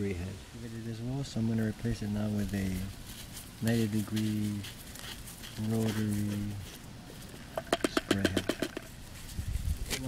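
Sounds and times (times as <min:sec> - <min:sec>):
sprinkler head clicking: 0:07.5 - 0:08.9.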